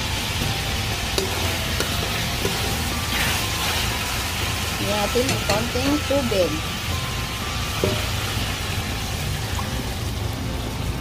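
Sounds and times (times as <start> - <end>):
pork sizzling in a wok: 0.0 - 11.0.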